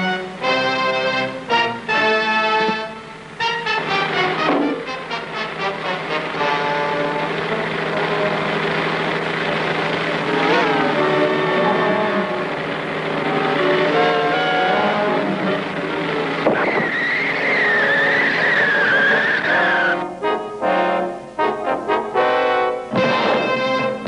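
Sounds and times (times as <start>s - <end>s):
cartoon car engine running: 0.0s - 20.2s
wavering tyre squeal: 5.1s - 20.1s.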